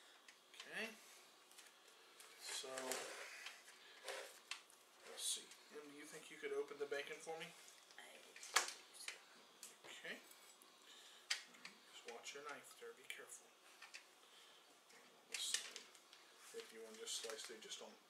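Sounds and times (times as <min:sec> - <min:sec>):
plastic package crinkling: 0:15.4 - 0:17.7.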